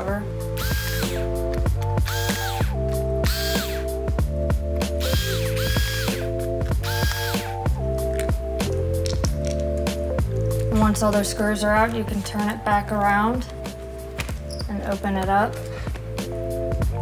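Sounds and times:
background music: 0.0 - 17.0
electric screwdriver whirring: 0.6 - 1.3, 2.0 - 3.9, 5.0 - 7.6.

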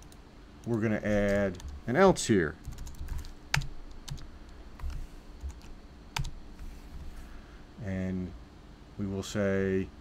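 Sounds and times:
computer keyboard typing: 2.6 - 7.1.

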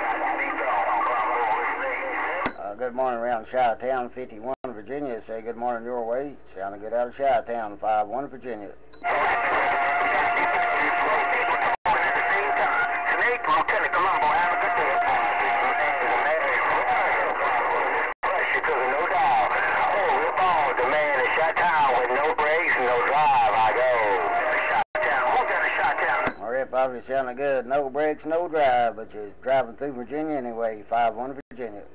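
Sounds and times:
garbled radio voices: 0.0 - 4.8, 9.0 - 31.9.

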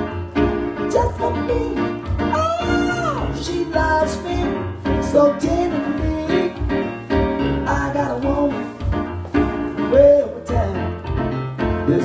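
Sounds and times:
electronic keyboard piano chords: 0.0 - 12.0
man singing into microphone: 0.9 - 6.8, 7.6 - 8.7, 9.9 - 10.9.

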